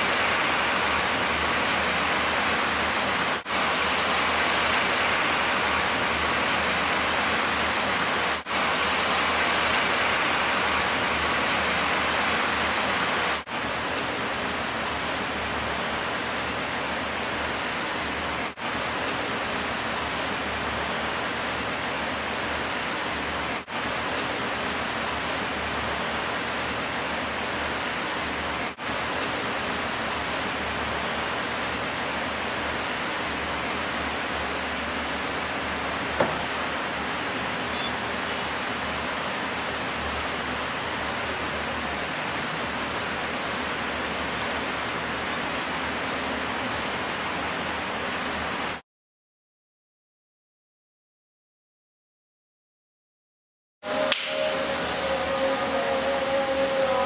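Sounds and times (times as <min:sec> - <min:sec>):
steady rushing water noise: 0:00.0 - 0:48.8, 0:53.9 - 0:57.0
sharp click: 0:54.1 - 0:54.4.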